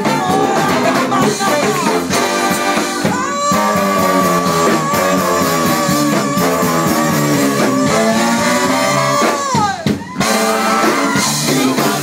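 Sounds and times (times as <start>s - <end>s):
funk band horn section: 0.0s - 12.0s.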